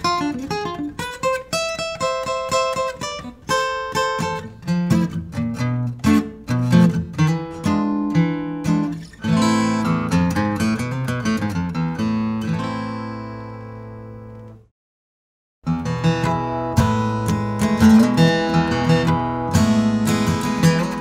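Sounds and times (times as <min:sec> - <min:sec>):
acoustic guitar playing: 0:00.0 - 0:14.7, 0:15.6 - 0:21.0.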